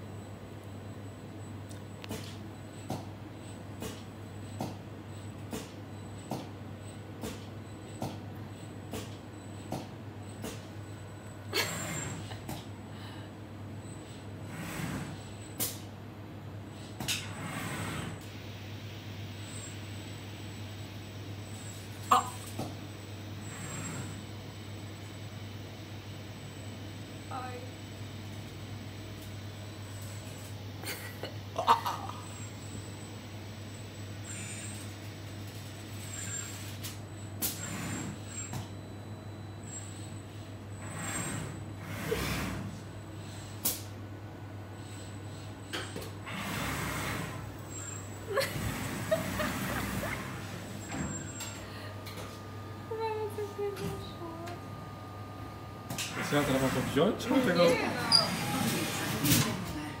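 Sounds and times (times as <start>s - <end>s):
machine hum: 37.6s - 60.0s.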